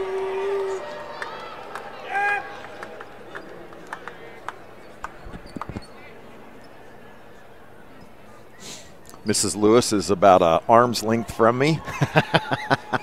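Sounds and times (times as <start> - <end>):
long held vocal note: 0.0 - 0.9.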